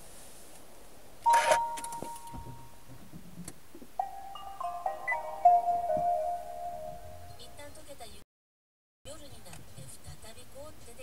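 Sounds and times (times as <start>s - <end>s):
held beep: 1.3s - 2.7s, 4.0s - 6.5s
electronic start-up chime melody: 4.0s - 7.4s.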